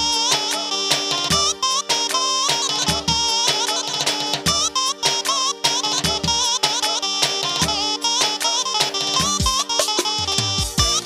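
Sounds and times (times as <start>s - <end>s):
band playing dance music: 0.0s - 11.0s.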